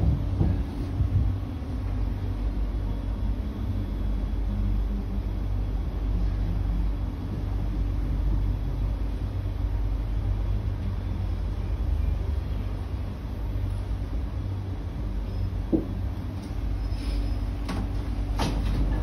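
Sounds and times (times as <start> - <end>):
faint motor hum: 0.0 - 19.0.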